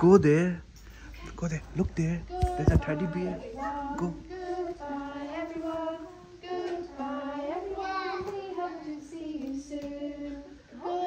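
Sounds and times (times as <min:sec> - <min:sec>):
women and children singing: 0:02.2 - 0:11.0.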